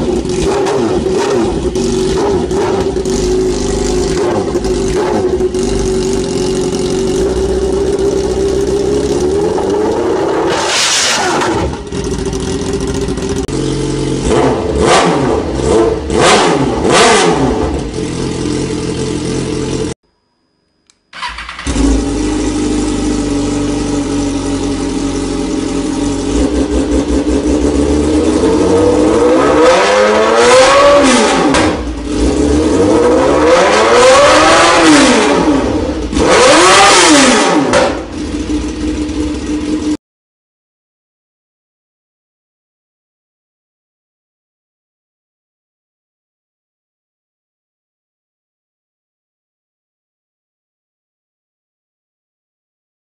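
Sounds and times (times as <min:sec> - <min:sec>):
motorcycle engine idling and revving: 0:00.0 - 0:20.0, 0:21.2 - 0:40.0.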